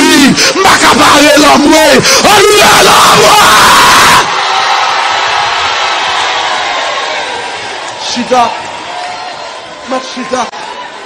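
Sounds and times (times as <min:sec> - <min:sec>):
man yelling: 0:00.0 - 0:04.2
crowd shouting and cheering: 0:00.0 - 0:11.0.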